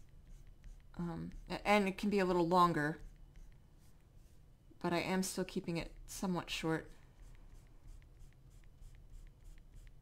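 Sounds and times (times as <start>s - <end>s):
stylus scratching on tablet: 0.0s - 10.0s.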